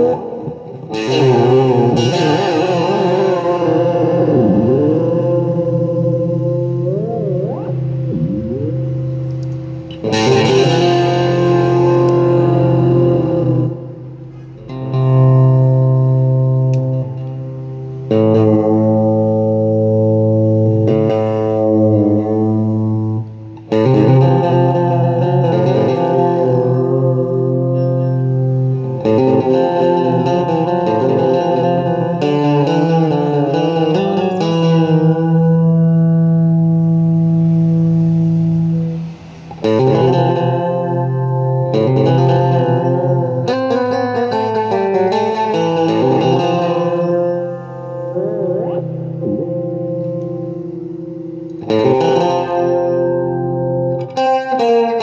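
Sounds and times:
fuzzed electric guitar chords: 0.0 - 55.0.

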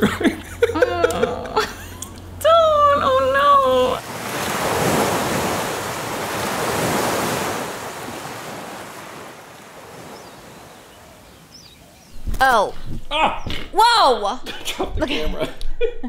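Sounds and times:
ocean surf washing onto beach: 3.9 - 12.1.

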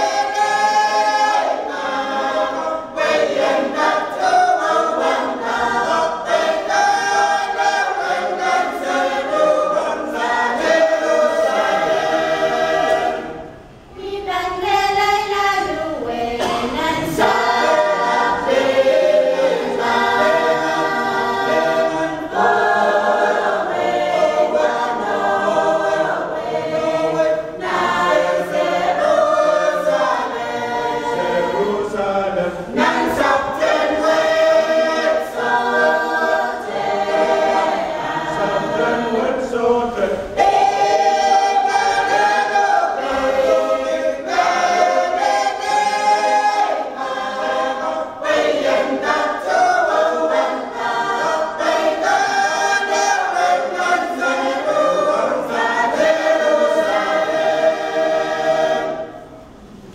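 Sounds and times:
choir singing a hymn: 0.0 - 59.9.

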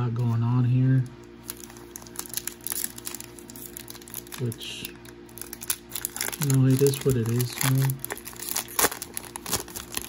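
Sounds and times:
wrapper crinkling: 1.4 - 10.0.

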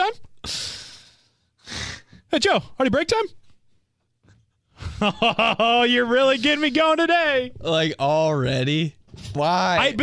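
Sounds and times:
man inhaling: 0.4 - 2.2.

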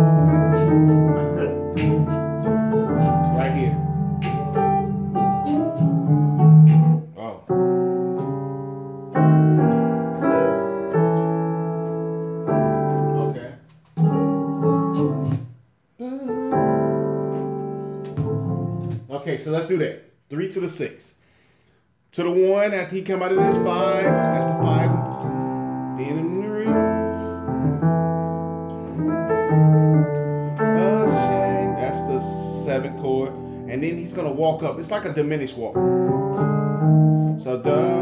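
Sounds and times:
keyboard playing gospel piano chords: 0.0 - 15.6, 16.3 - 19.1, 23.2 - 38.0.

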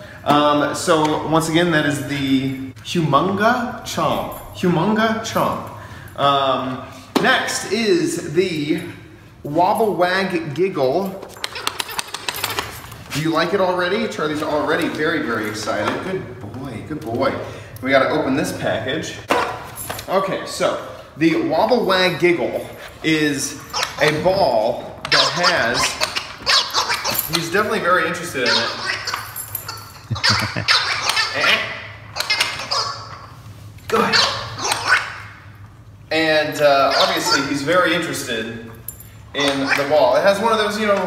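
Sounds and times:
dog toy giggling: 11.4 - 12.6, 25.1 - 27.3, 28.4 - 33.2, 36.9 - 37.5.

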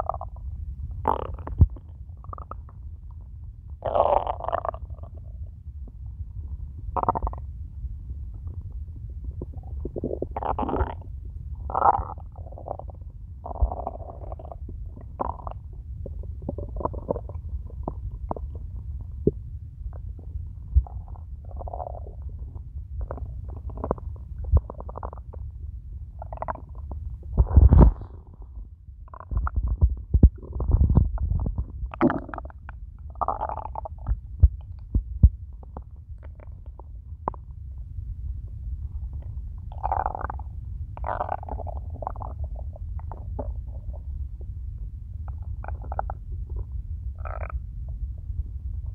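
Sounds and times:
stomach growling: 0.0 - 6.2, 6.9 - 7.6, 8.3 - 37.7, 38.8 - 48.9.

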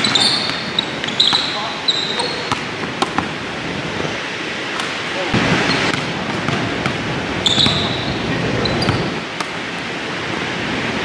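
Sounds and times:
sneaker squeaks: 0.0 - 3.2, 5.6 - 9.6
basketball bouncing on wooden floor: 5.6 - 8.0.

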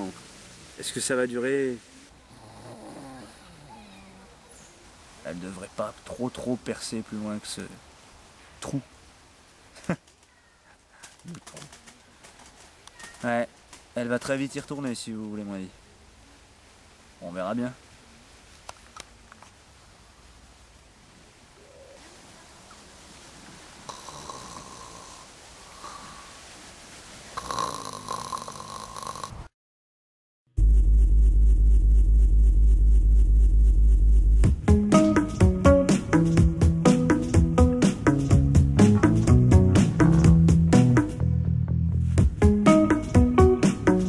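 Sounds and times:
faint bird call: 10.2 - 12.1, 12.8 - 13.3
man snoring with whistling tone: 23.9 - 25.3, 27.4 - 29.5.

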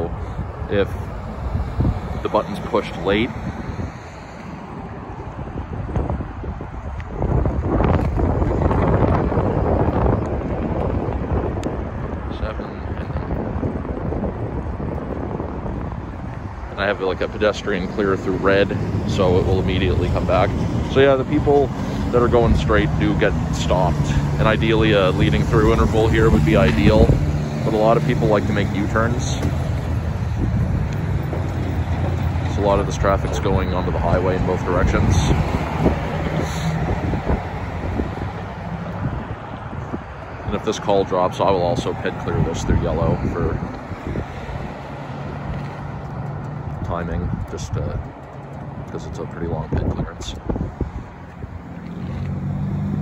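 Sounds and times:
road traffic noise: 0.0 - 53.0
wind on the microphone: 0.0 - 53.0.

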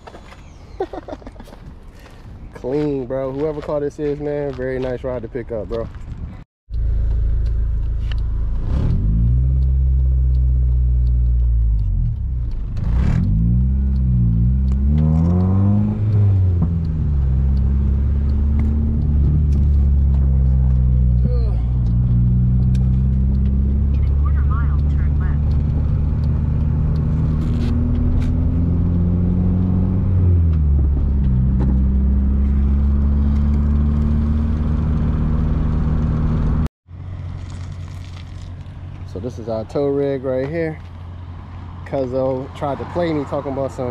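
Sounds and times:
car engine revving in cabin: 6.7 - 36.7.

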